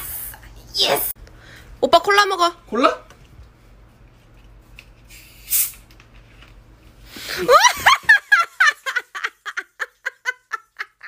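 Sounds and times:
man cackling laugh: 7.3s - 11.0s.

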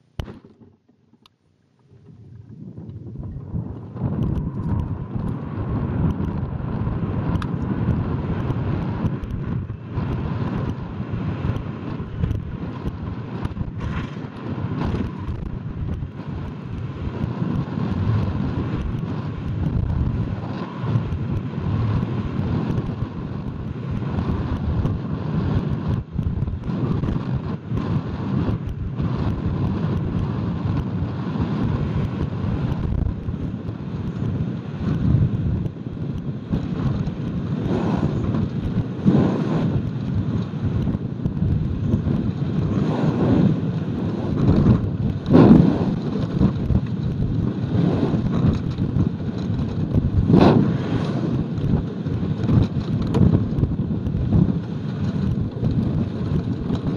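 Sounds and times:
wind buffeting microphone: 1.8s - 56.9s.

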